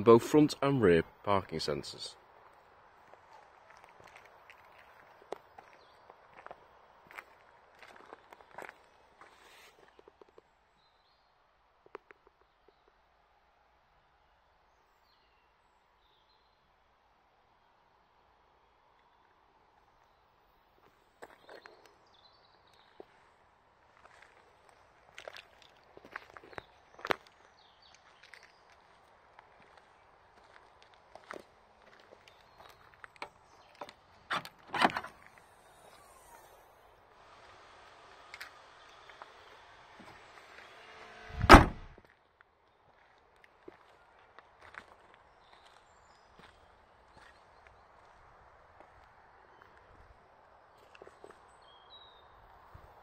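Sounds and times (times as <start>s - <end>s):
footsteps on gravel: 3.0s - 9.9s, 24.0s - 36.6s.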